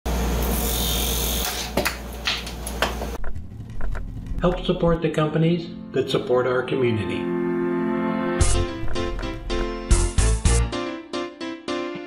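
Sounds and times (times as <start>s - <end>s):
turning tool cutting wood hiss: 0.4s - 1.7s.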